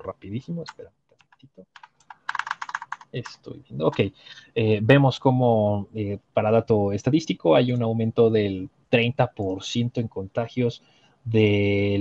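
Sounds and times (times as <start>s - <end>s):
typing on computer keyboard: 0.7s - 3.3s.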